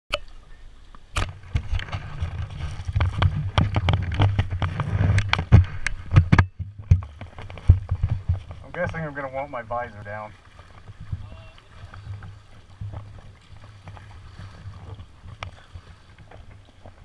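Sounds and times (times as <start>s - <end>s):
water splashes: 0.1s - 17.0s.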